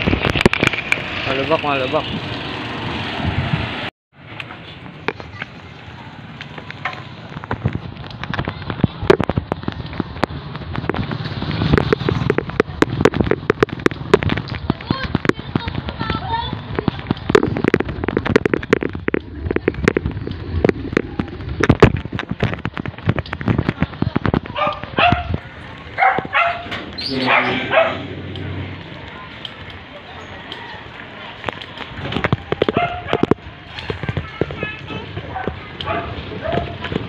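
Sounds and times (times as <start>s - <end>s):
wind rushing over microphone: 0.0s - 1.3s, 2.0s - 3.9s, 7.2s - 29.8s
phone and bike rattling: 4.5s - 37.0s.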